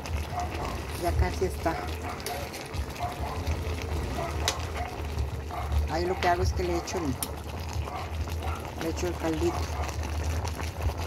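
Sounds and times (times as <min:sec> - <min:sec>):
broth bubbling and sizzling: 0:00.0 - 0:11.0.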